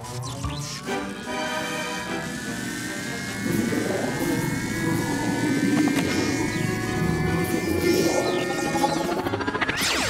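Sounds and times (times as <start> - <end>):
background music: 0.0 - 10.0
buzzing rumble: 0.0 - 10.0
whirring whine rising in pitch: 0.0 - 10.0.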